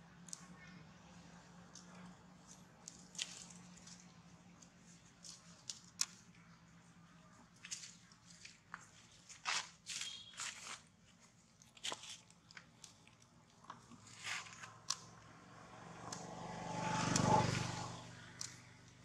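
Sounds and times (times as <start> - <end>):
crunches on dry leaves: 0.2 - 19.0
passing vehicle: 14.4 - 19.0.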